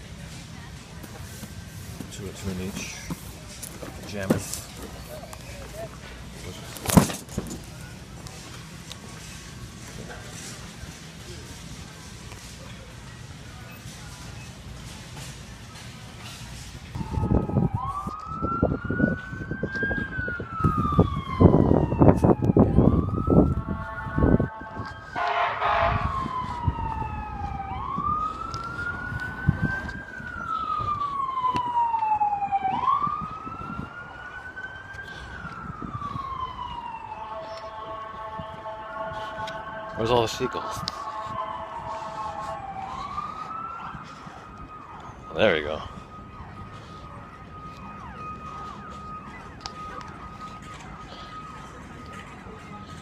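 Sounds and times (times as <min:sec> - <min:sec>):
emergency vehicle siren wailing: 0:00.0 - 0:53.0
wind rumble on microphone: 0:16.7 - 0:40.0.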